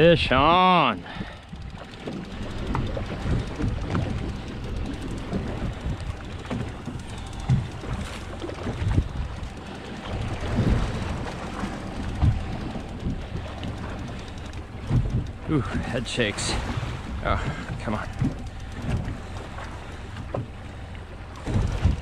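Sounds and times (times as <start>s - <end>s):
steady low rumble: 0.0s - 22.0s
water washing against boat: 0.0s - 22.0s
wind buffeting microphone: 0.0s - 22.0s.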